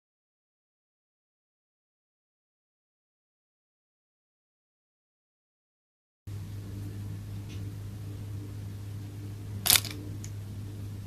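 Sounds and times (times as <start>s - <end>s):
steady low hum: 6.3s - 11.0s.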